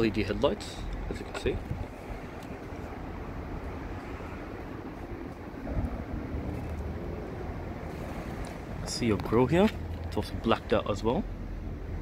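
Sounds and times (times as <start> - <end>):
traffic rumble on a road: 0.0 - 12.0
vehicle engine: 0.6 - 12.0.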